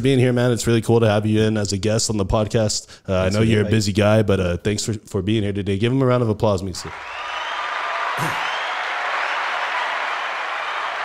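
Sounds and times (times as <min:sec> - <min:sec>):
crowd applause: 0:06.9 - 0:11.0.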